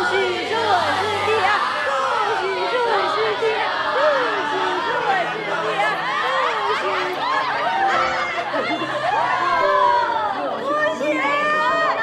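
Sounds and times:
people talking over each other: 0.0s - 12.0s.

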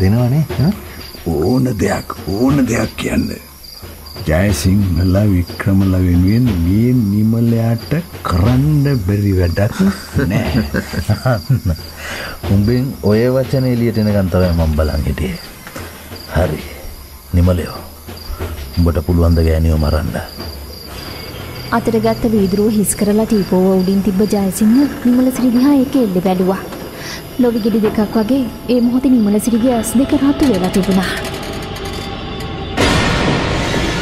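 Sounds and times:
crickets chirping: 0.0s - 34.0s
loud sudden burst: 32.7s - 34.0s.

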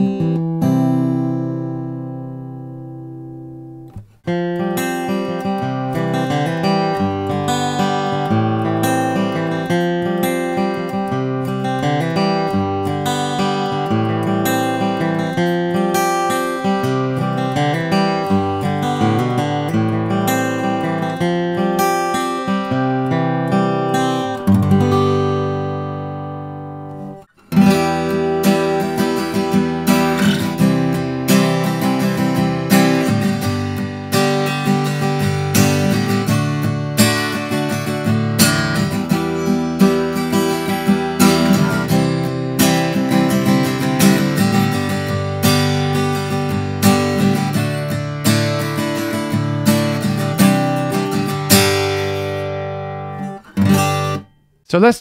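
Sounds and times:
acoustic guitar fingerpicked: 0.0s - 54.9s
acoustic guitar strummed: 0.0s - 55.0s.

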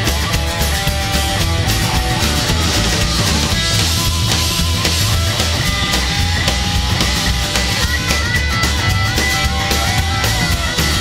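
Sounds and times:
double bass: 0.0s - 11.0s
drum kit: 0.0s - 11.0s
electric guitar held notes: 0.0s - 11.0s.

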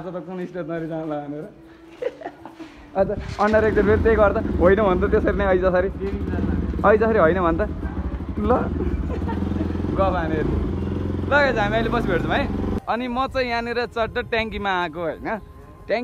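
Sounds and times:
voices: 0.0s - 16.0s
motorcycle engine running: 3.4s - 12.9s.

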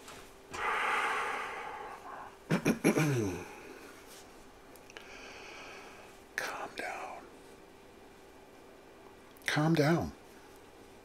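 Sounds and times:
sharp breathy bursts: 0.6s - 2.4s
man whispering: 6.3s - 7.4s.

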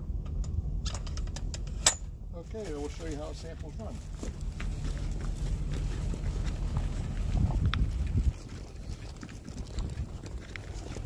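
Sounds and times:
footsteps on gravel: 2.5s - 11.0s
wind buffeting microphone: 4.0s - 11.0s.

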